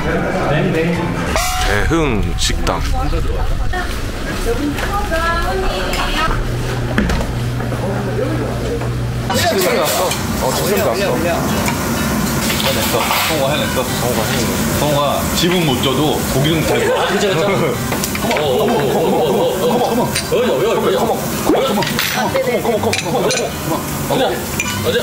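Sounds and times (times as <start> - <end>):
people talking and laughing: 0.0 - 25.0
meat sizzling on a grill: 9.4 - 25.0
glasses and tableware clinking: 21.8 - 23.6, 24.5 - 25.0.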